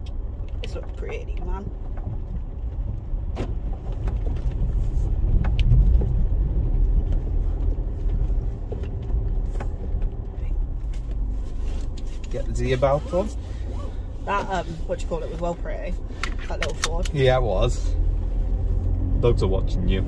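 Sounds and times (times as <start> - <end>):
engine and tyres rumbling: 0.0 - 20.0.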